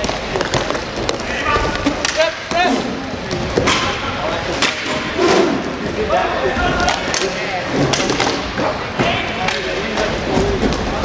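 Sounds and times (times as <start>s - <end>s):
hockey sticks and puck clacking: 0.0s - 5.2s, 6.8s - 11.0s.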